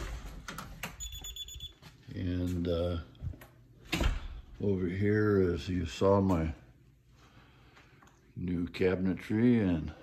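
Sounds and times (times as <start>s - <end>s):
alarm keypad beep: 1.0s - 1.8s.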